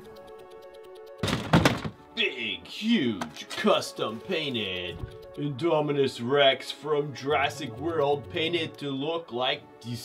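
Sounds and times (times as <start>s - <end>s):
heavy plastic thunk: 1.2s - 2.0s
man speaking: 2.2s - 10.0s.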